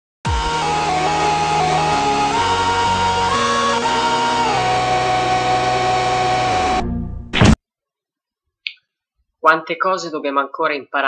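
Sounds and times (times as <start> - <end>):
distorted buzzing tone: 2.6 - 7.6.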